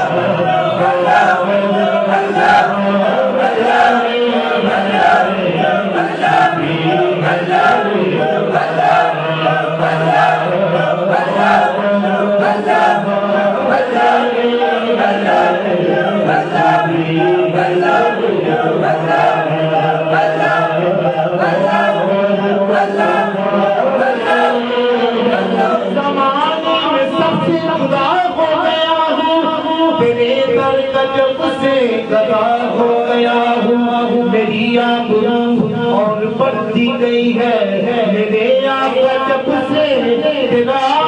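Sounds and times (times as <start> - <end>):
voices chanting a refrain: 0.0 - 28.0.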